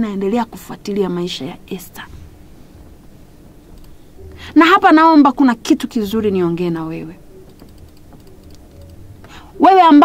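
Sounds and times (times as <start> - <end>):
woman speaking: 0.0 - 2.2, 4.3 - 7.2, 9.4 - 10.0
low steady hum: 0.0 - 10.0
faint clicks: 3.7 - 4.0.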